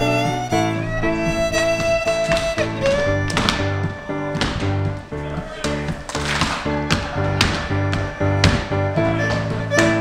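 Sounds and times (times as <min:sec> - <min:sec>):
fiddle tune: 0:00.0 - 0:10.0
keyboard chords: 0:00.0 - 0:10.0
percussive knocks: 0:01.2 - 0:05.0, 0:05.7 - 0:09.9.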